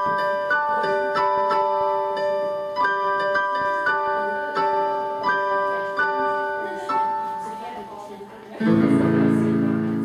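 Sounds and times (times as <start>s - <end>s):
electronic keyboard piano chords: 0.0s - 7.8s, 8.6s - 10.0s.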